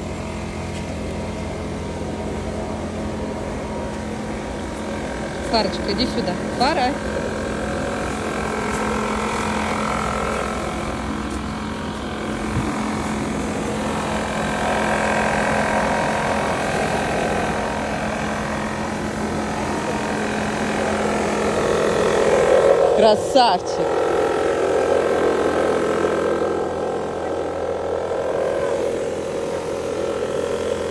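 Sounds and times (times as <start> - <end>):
leaf blower motor droning: 0.0 - 30.9.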